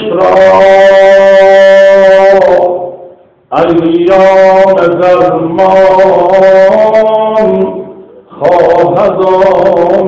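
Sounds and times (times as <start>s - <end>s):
man chanting a hymn: 0.0s - 10.0s.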